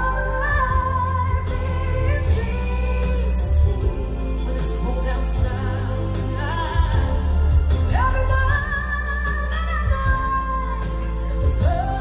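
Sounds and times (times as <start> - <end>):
band backing: 0.0 - 12.0
woman singing pop live: 0.0 - 12.0.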